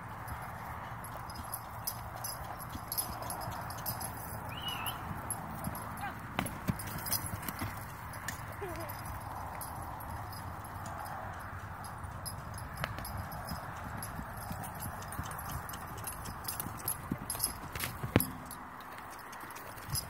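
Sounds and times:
horse hoofbeats on dirt: 0.0s - 20.0s.

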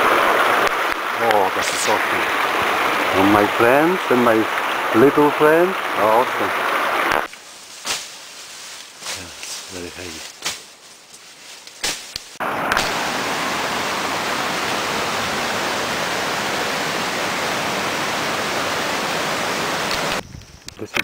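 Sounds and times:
water rushing in stream: 0.0s - 7.5s, 12.4s - 20.2s.

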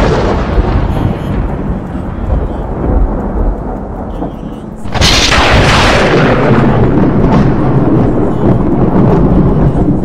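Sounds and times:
rumbling thunder: 0.0s - 10.0s.

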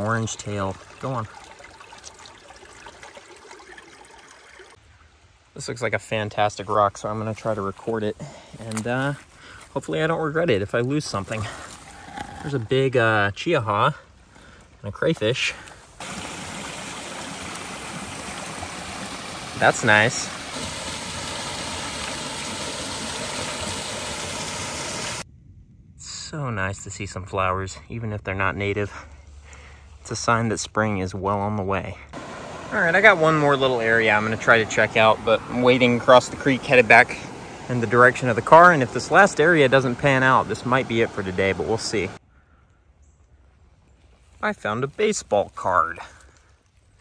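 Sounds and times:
water trickling over rocks: 0.0s - 5.7s, 15.2s - 25.2s, 32.1s - 42.2s.

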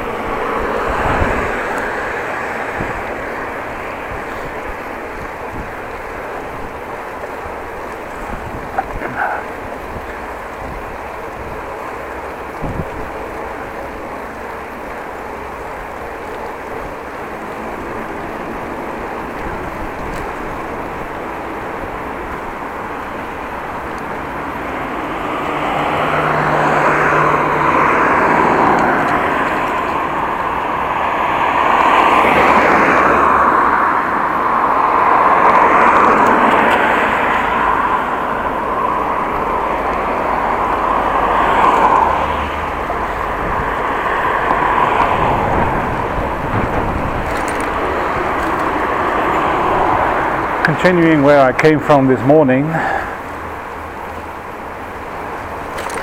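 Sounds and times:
cars passing close by: 0.0s - 56.0s
road noise from moving bicycle: 0.0s - 56.0s.

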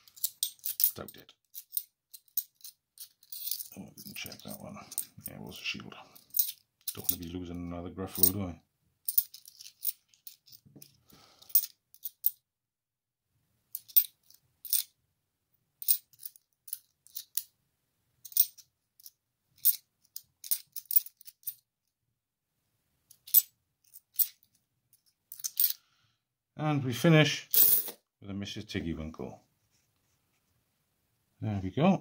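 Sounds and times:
coins clicking together: 0.0s - 5.3s, 6.2s - 7.2s, 9.1s - 10.6s, 11.4s - 12.4s, 13.8s - 14.9s, 15.8s - 17.5s, 18.2s - 21.6s, 23.1s - 24.5s, 25.3s - 25.8s, 27.5s - 28.0s.

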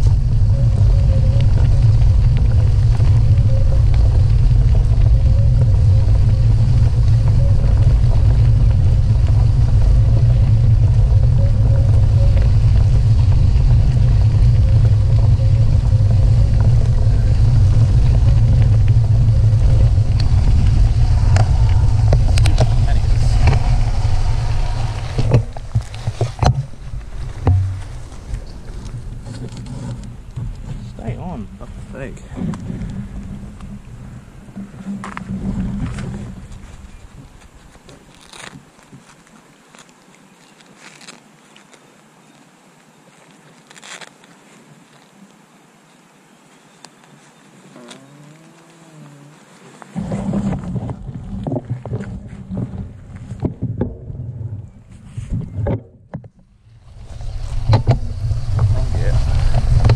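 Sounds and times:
motorcycle engine hum: 0.0s - 38.4s, 47.6s - 59.9s
wind buffeting microphone: 0.0s - 38.4s, 49.9s - 59.9s.

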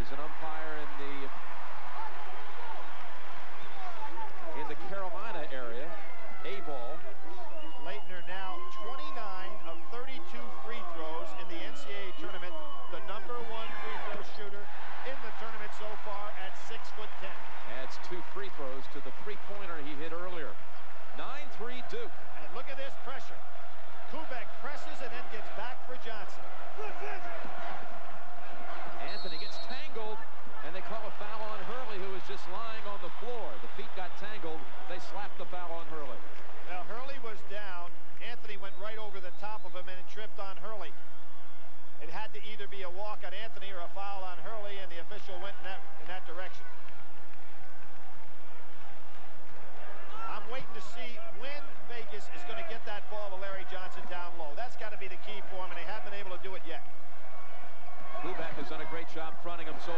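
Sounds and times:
murmur of arena crowd: 0.0s - 59.9s.

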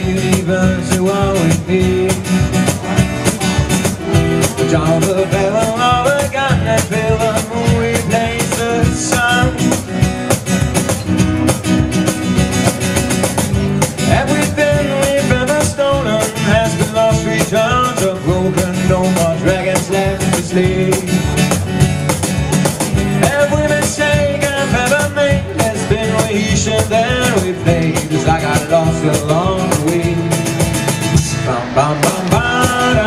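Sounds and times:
acoustic guitar strumming: 0.0s - 33.0s
cajon beat: 0.0s - 33.0s.

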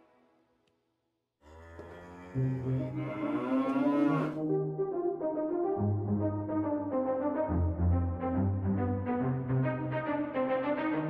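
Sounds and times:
cow mooing: 1.4s - 4.4s
sustained horn music: 1.8s - 11.0s.

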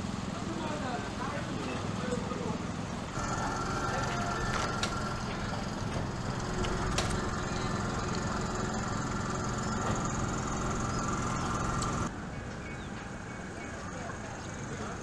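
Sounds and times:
steady noisy rumble: 0.0s - 12.3s
faint voices: 0.4s - 12.1s, 13.1s - 15.0s.

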